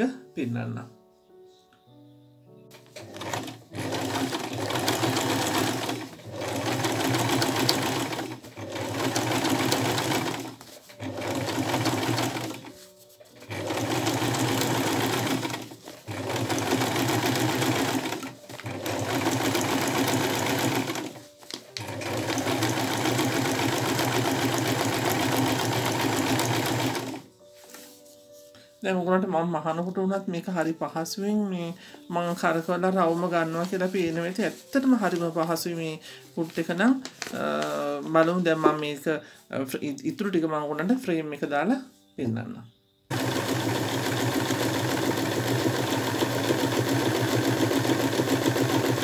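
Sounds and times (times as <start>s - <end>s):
sewing machine stitching: 2.8s - 27.3s, 43.1s - 49.0s.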